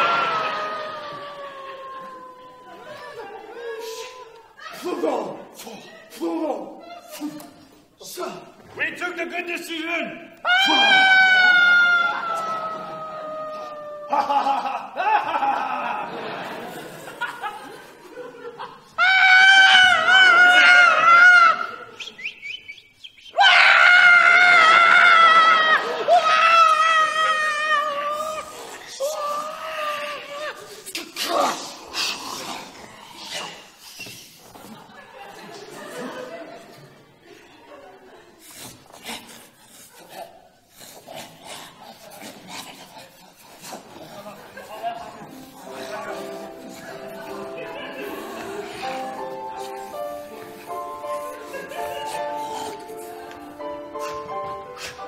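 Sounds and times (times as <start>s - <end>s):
person screaming: 10.4s - 15.1s, 19.0s - 21.8s, 23.4s - 30.6s
rasping vocal noises: 38.4s - 54.3s
music with held notes: 45.2s - 55.0s.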